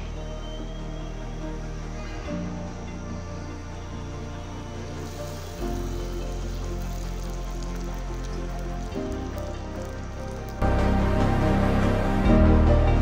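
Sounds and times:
soft ambient piano music: 0.0 - 13.0
dough sizzling in hot oil: 5.0 - 10.6.

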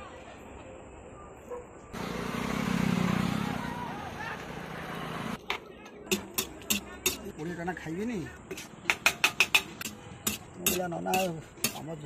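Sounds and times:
motor vehicle passing: 2.0 - 5.4.

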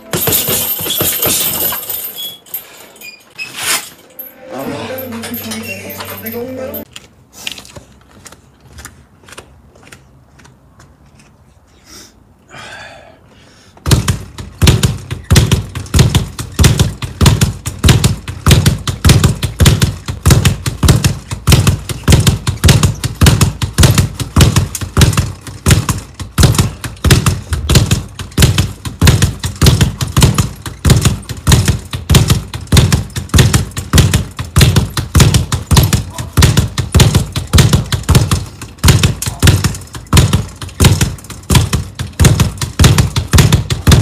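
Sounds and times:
speed bag being punched: 0.0 - 1.6, 13.8 - 44.0.

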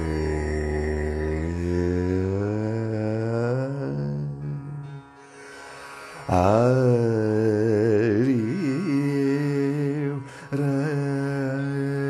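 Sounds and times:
man singing a held vowel: 0.0 - 5.1, 6.3 - 12.0
steady low drone: 0.0 - 11.0.

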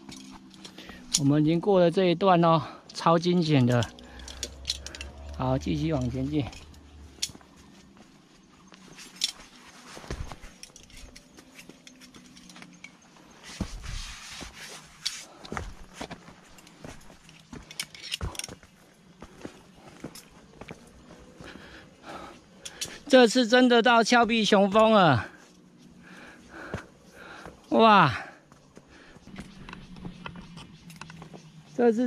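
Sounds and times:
footsteps and scuffs on rock: 7.2 - 12.6, 13.2 - 21.6.

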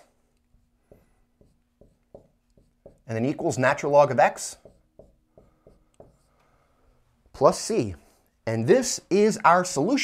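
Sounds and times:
marker tapping on whiteboard: 0.6 - 3.6, 4.3 - 6.4.

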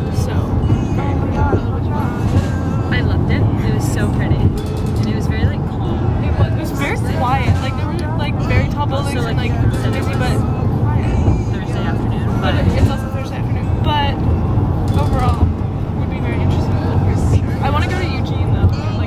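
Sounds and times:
people chatting: 0.0 - 14.2, 14.9 - 19.0
road and engine rumble: 0.0 - 19.0.

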